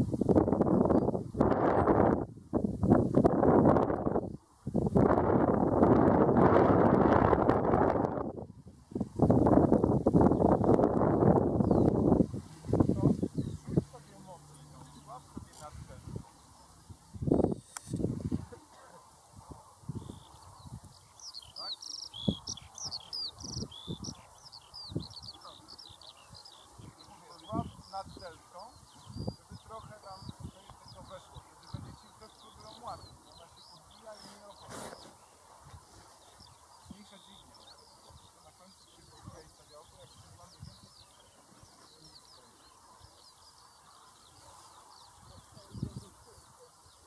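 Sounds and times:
small birds chirping: 0.0 - 6.3, 7.2 - 47.0
wind buffeting microphone: 0.0 - 38.3, 45.0 - 46.6
bird trill: 20.0 - 35.4.

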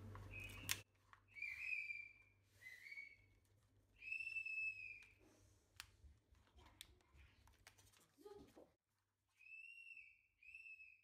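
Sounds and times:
whistle-like tone: 0.3 - 3.3, 4.0 - 5.2, 9.3 - 11.0.

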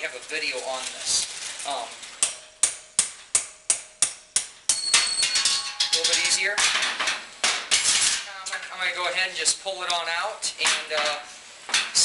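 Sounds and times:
hammer striking steel rod: 2.2 - 6.7
metallic clattering and ringing: 4.7 - 7.2.

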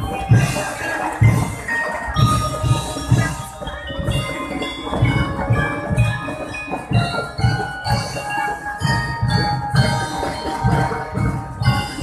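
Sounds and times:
bell lyres playing melody: 0.0 - 12.0
marching drum beat: 0.0 - 12.0.

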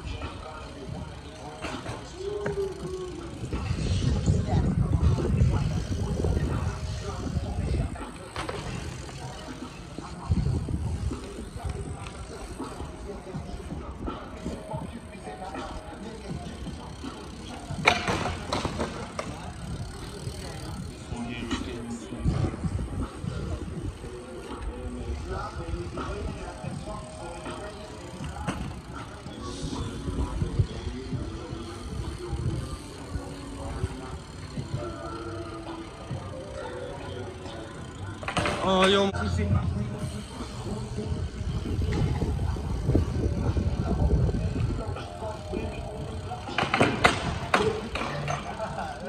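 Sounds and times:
background music: 0.0 - 49.0
bike tyre and frame noise: 0.0 - 49.0
voices: 0.0 - 49.0.

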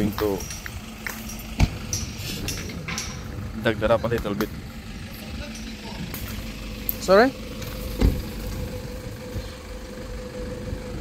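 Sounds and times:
engine running: 0.0 - 11.0
thump: 8.0 - 8.3.

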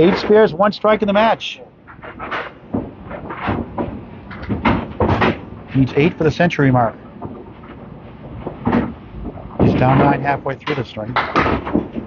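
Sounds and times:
bowling pins and balls knocking: 0.0 - 12.0.

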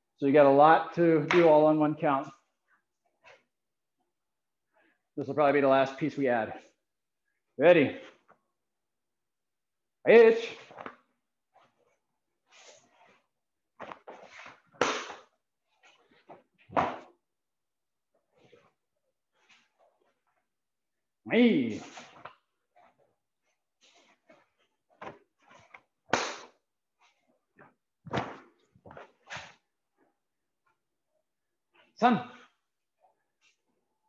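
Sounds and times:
body movement sounds: 10.4 - 20.8, 21.6 - 30.9
bare feet moving on a mat: 10.5 - 20.8, 21.6 - 30.9
fabric whip-like snaps: 13.8 - 15.4, 25.7 - 26.6.

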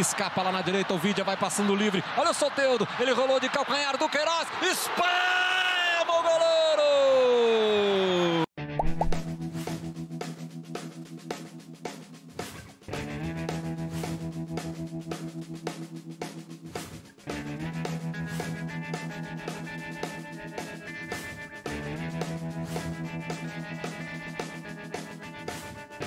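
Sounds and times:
music with steady beat: 9.0 - 26.0.

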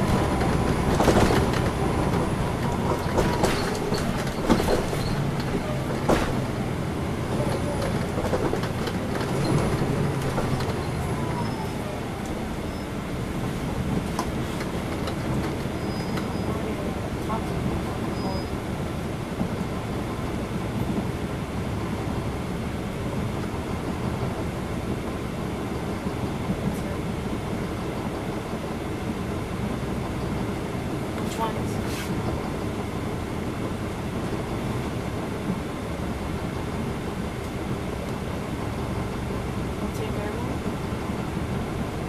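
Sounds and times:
diesel bus engine idling: 0.0 - 42.0.

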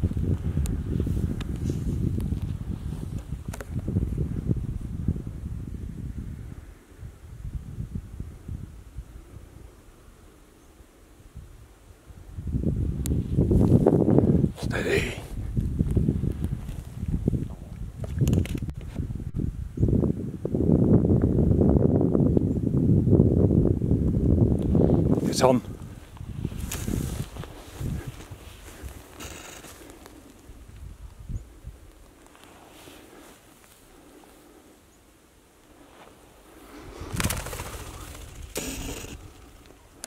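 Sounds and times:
wind rumbling on microphone: 0.0 - 40.0
grass rustling: 13.1 - 19.1, 24.6 - 40.0
whirr of bird wingbeats: 36.8 - 39.8.

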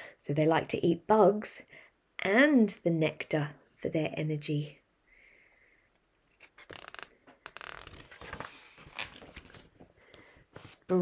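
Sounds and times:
book page turning: 6.2 - 10.0
paper rustles: 6.3 - 10.0.

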